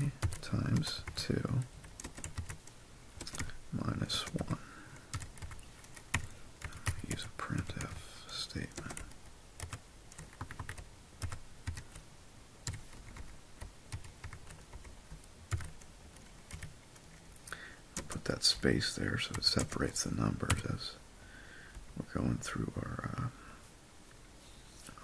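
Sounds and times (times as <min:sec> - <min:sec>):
computer keyboard typing: 0:00.0 - 0:08.0, 0:08.6 - 0:12.0, 0:12.6 - 0:17.2, 0:19.3 - 0:20.7.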